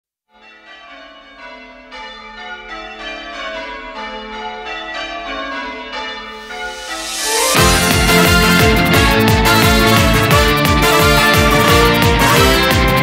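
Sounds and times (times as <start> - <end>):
church bells pealing: 0.4 - 13.0.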